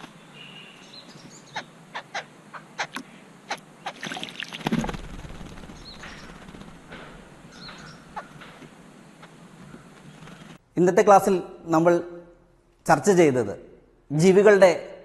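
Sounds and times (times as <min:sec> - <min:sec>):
harsh bird calls: 0:00.0 - 0:04.2, 0:05.0 - 0:10.6
birds splashing in water: 0:02.8 - 0:06.8.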